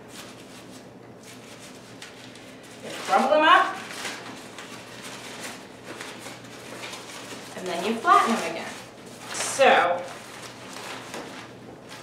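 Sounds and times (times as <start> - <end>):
paper crumpling: 0.1 - 12.0.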